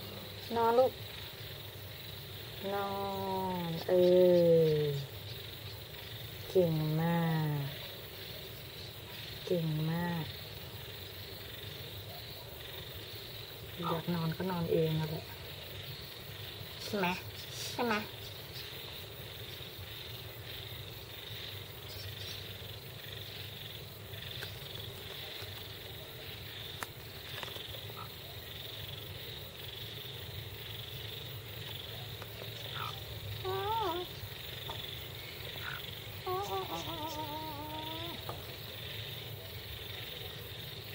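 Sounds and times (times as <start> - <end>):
hen trilling softly: 32.5 - 38.3.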